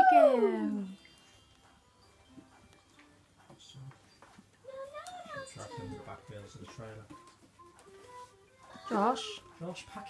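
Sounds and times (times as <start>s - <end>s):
faint music from television: 0.0s - 10.0s.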